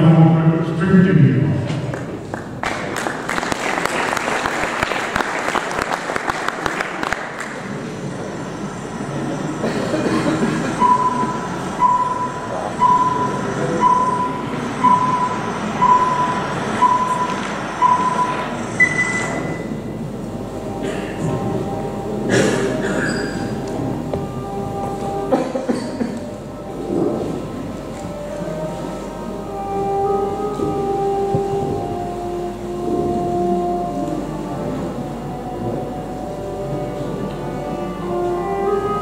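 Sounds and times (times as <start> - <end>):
higher longer tone: 7.4 - 39.0
short countdown beeps: 10.8 - 19.8.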